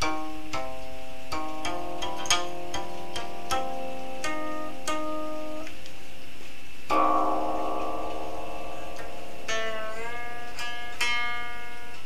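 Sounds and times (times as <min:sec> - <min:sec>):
zither chord ringing: 0:00.0 - 0:05.7, 0:06.9 - 0:12.0
zither notes plucked: 0:00.0 - 0:12.0.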